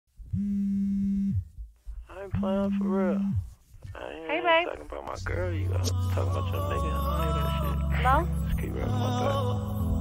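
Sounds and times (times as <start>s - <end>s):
mobile phone vibrating: 0.2s - 3.7s.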